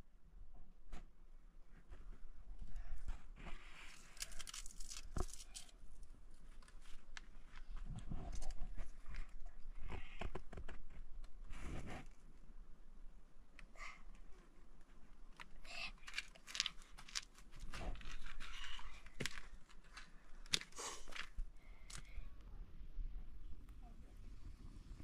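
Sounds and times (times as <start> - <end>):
dry twigs crunching and snapping: 3.9 - 8.5, 15.3 - 22.1.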